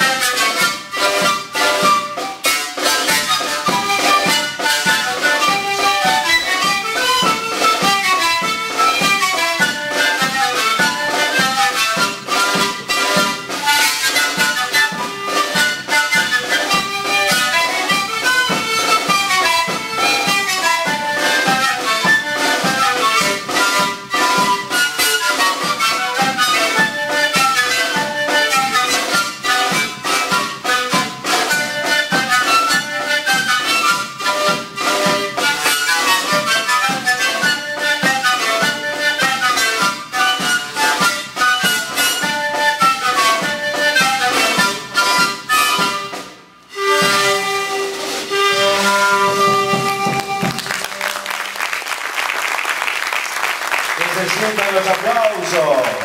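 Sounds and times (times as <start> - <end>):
panpipes playing melody: 0.0 - 51.6.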